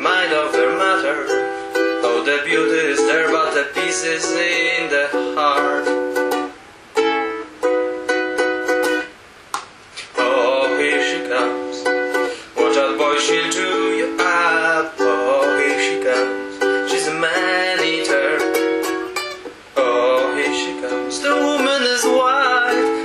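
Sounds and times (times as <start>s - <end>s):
ukulele strumming: 0.0s - 23.0s.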